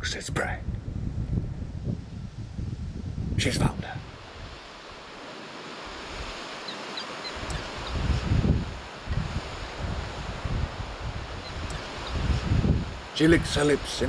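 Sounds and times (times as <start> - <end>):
wind: 0.0 - 14.0
wind gusts buffeting microphone: 0.0 - 14.0
surf on rocky shore: 1.6 - 14.0.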